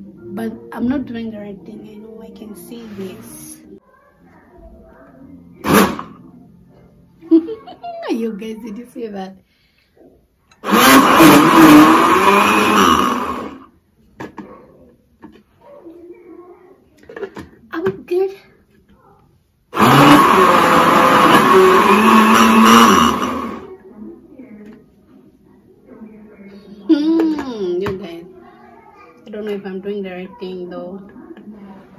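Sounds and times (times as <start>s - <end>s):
blender motor burst: 5.6s - 6.2s, 10.6s - 13.7s, 19.8s - 23.7s.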